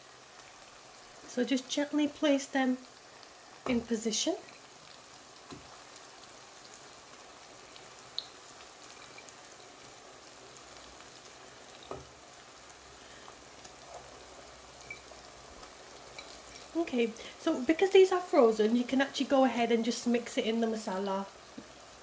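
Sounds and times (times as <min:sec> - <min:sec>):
sauce sizzling in a frying pan: 0:00.0 - 0:22.0
meatballs knocking into pan: 0:03.6 - 0:04.0, 0:05.4 - 0:05.8, 0:11.8 - 0:12.2.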